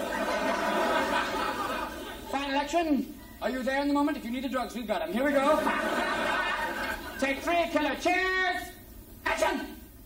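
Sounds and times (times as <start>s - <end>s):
audience laughing: 0.0s - 2.5s, 5.3s - 7.6s.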